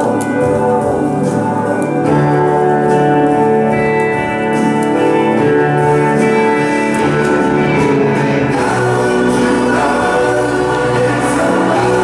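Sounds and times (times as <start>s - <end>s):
choir singing held chords: 5.1s - 12.0s.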